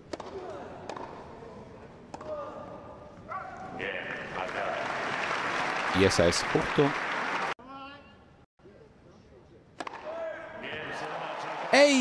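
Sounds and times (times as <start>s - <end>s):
crowd applause: 4.3s - 7.6s.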